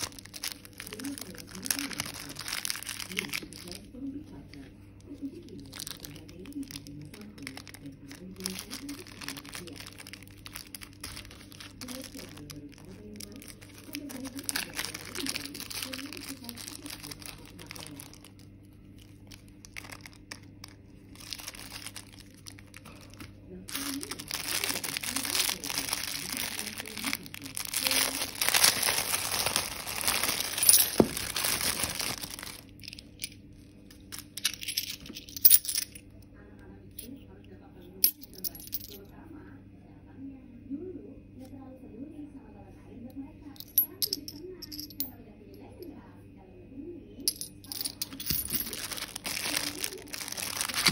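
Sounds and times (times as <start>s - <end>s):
plastic bag crinkling: 0.0s - 4.0s, 5.0s - 35.9s, 47.3s - 50.9s
coins clinking: 23.7s - 33.4s, 34.0s - 36.0s, 38.0s - 39.0s, 43.6s - 45.1s, 47.3s - 50.9s.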